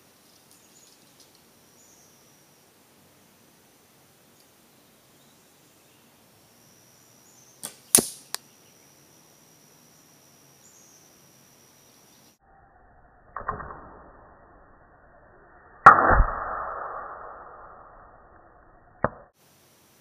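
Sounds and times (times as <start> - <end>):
arrow striking target: 7.6 - 8.4, 13.3 - 14.1, 15.8 - 17.6
bow string snapping: 7.6 - 8.4.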